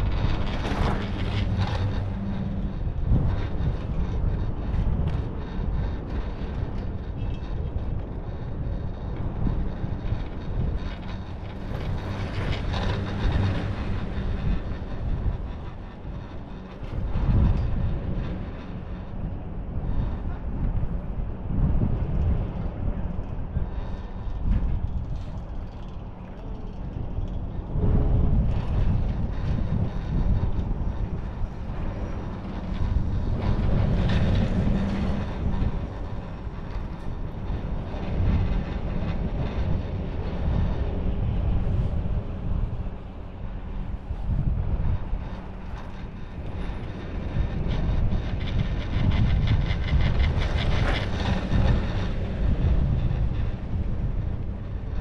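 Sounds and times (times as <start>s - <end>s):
chairlift rumble: 0.0s - 55.0s
rapid rattling of chairlift: 0.0s - 55.0s
wind buffeting microphone: 0.0s - 55.0s.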